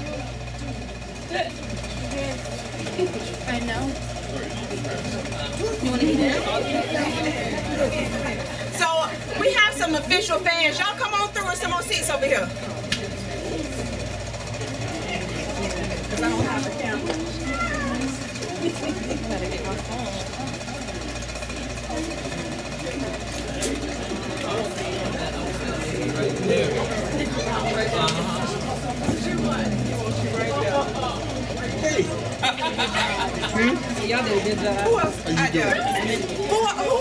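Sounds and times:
indistinct chatter of people: 0.0 - 37.0.

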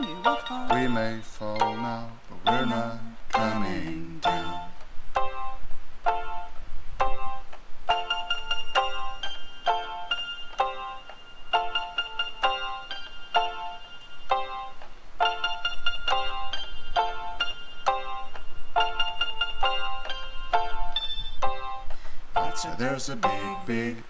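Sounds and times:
keyboard chords: 0.0 - 24.0.

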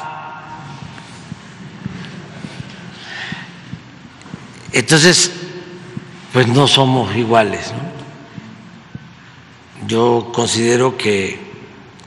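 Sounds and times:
large room hum: 0.0 - 12.0.

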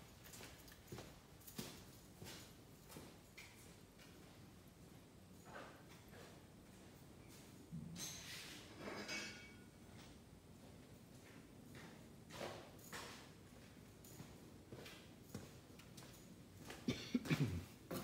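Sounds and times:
person coughing: 16.9 - 17.8.

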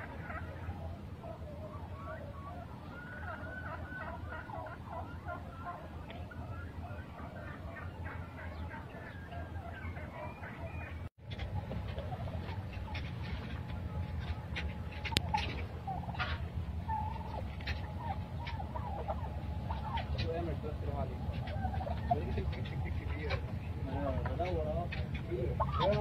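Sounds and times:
turkeys gobbling: 0.0 - 26.0
steady low rumble: 10.8 - 25.7.

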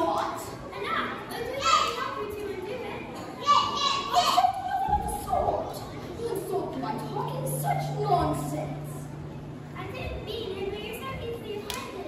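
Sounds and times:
children calling out: 0.0 - 8.2.

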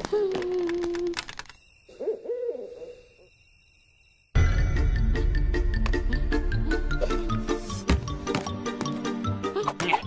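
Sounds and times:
owl hooting: 1.9 - 3.3.

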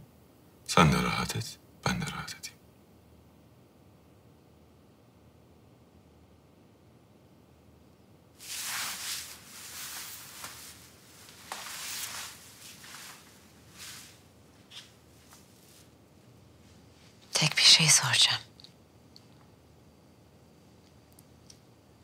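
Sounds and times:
heavy gown rustling: 8.4 - 16.0
soft footsteps: 8.4 - 17.3.

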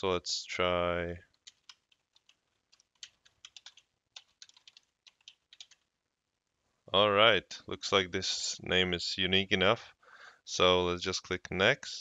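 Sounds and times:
typing on computer keyboard: 1.3 - 5.9.

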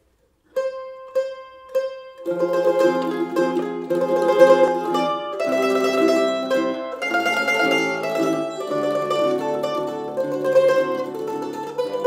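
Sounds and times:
mandolin plucking notes: 0.5 - 12.0.

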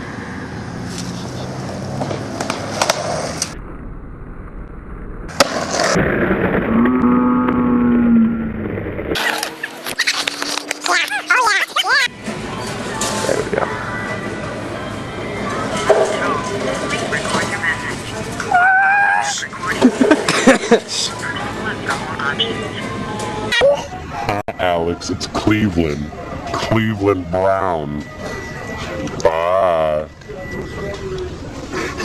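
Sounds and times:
skateboard wheels rolling on asphalt: 1.6 - 3.6, 5.3 - 6.4
falling pitched tone: 5.9 - 11.8
faint voices: 9.4 - 32.0.

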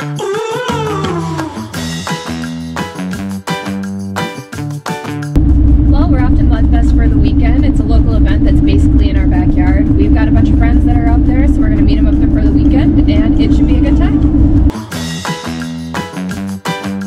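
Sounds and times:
droning hum: 5.4 - 14.7
truck engine and road rumble: 5.4 - 14.7.

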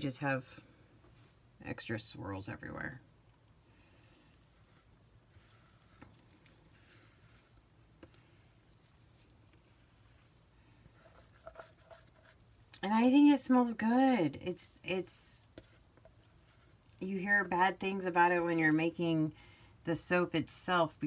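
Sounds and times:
soft handling sounds: 0.6 - 1.6, 3.2 - 12.8, 15.4 - 17.0.

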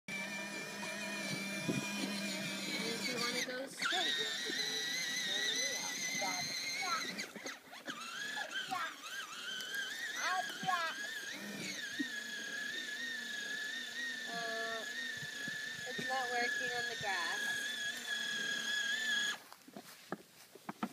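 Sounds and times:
toy vehicle motor whine: 0.1 - 19.6.

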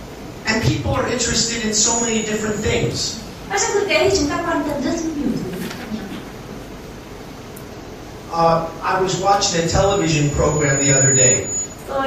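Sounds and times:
person's voice through a microphone: 0.5 - 6.2, 8.3 - 12.0.

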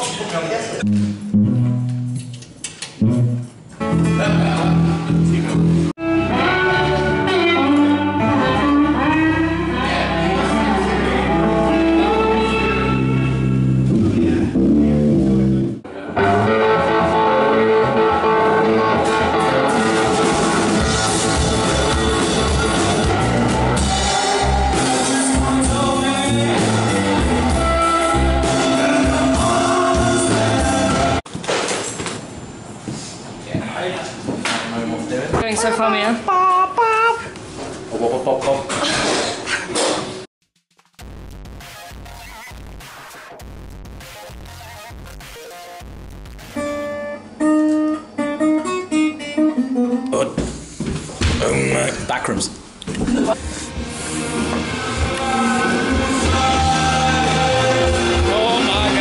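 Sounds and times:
bass guitar: 0.8 - 31.2, 52.9 - 59.0
electric guitar: 0.8 - 31.2, 41.6 - 50.3, 52.9 - 59.0
muddled live music: 0.8 - 31.2, 53.1 - 59.0.

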